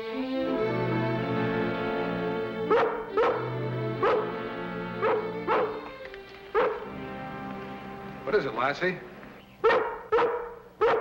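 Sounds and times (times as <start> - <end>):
orchestral music: 0.0 - 9.4
dog barking: 2.7 - 4.4, 5.0 - 5.8, 6.5 - 6.9, 9.6 - 11.0.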